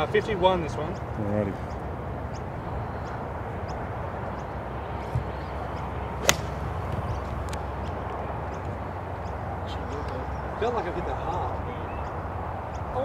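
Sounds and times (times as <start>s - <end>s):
golf club striking ball: 6.2s - 7.6s.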